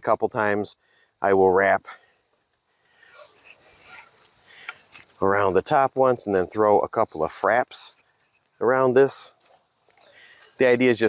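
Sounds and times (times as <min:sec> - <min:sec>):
rope rubbing on wooden poles: 0:03.0 - 0:10.8.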